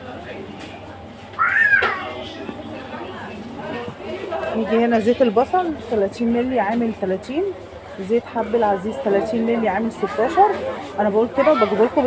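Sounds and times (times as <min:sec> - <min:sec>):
short high-pitched cry: 0:01.4 - 0:02.2.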